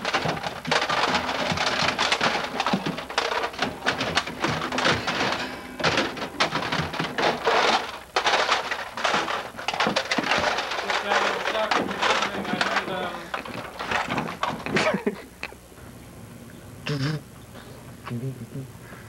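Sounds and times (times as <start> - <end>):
packaging rustling: 0.0 - 15.1
items clattering on wire shelves: 0.0 - 15.2.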